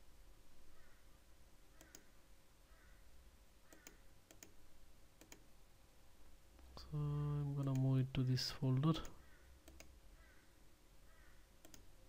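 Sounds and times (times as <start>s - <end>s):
faint computer mouse clicks: 1.8s - 2.1s, 3.7s - 4.6s, 5.2s - 5.5s, 9.0s - 9.9s, 11.6s - 11.9s.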